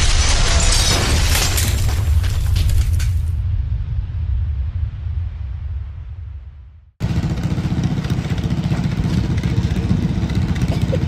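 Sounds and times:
deep rumble of intro effect: 3.2 - 9.1.

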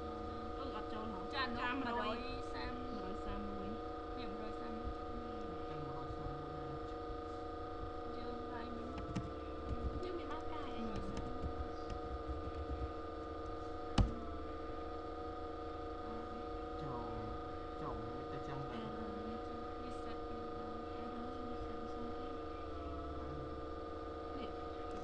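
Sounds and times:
steady multi-tone hum: 0.0 - 25.0
faint voices: 16.0 - 23.7.

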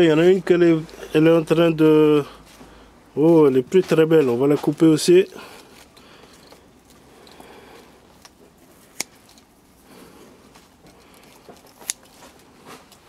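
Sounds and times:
rustling of stems and leaves: 0.0 - 13.0
scissors snipping: 8.2 - 9.4, 11.1 - 12.3.

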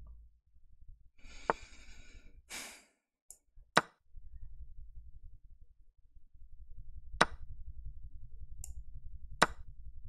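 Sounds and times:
person sighing: 1.2 - 2.9.

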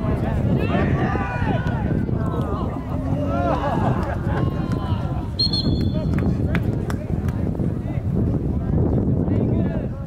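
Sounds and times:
people shouting and calling: 0.2 - 5.4.

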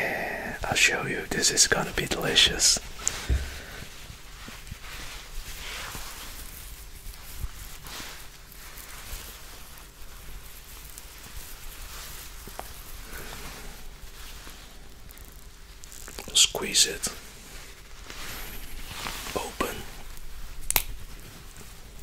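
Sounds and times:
rustling of hairy fruit rinds: 0.0 - 22.0.

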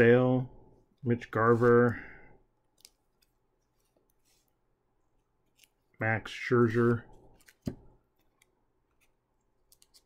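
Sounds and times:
plastic card sleeves rustling: 6.9 - 10.0.

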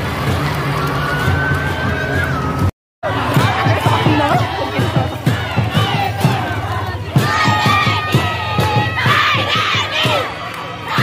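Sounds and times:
crowd shouting together: 3.0 - 11.0.

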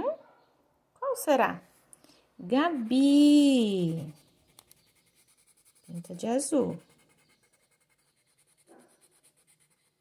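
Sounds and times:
colored pencil scratching on paper: 2.5 - 10.0.

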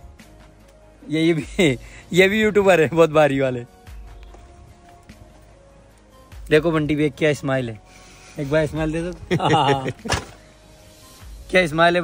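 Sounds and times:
men talking: 1.0 - 3.8, 6.3 - 10.4, 11.4 - 12.0.

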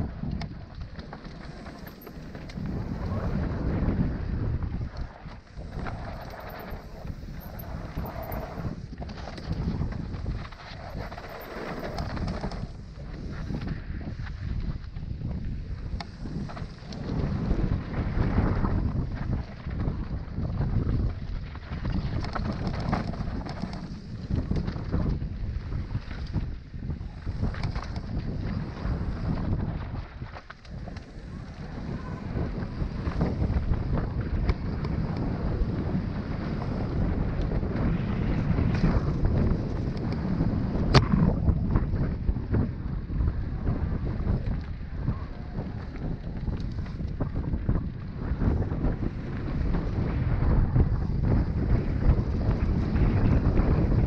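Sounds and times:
mountain bike rattling on dirt trail: 0.0 - 44.9, 45.6 - 54.0
wind buffeting microphone: 0.0 - 54.0.

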